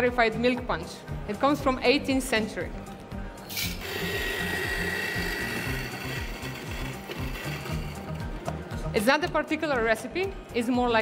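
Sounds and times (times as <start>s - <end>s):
background music with beat: 2.4s - 11.0s
coffee grinder whining: 3.5s - 8.4s.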